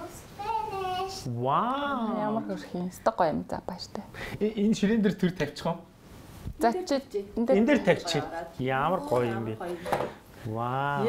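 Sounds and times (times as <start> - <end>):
people talking: 0.0 - 3.9.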